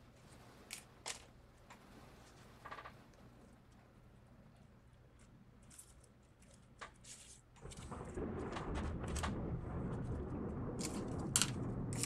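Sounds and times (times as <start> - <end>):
low room hum: 0.0 - 12.0
plant stems clicking and rustling: 0.2 - 3.0, 5.1 - 9.4.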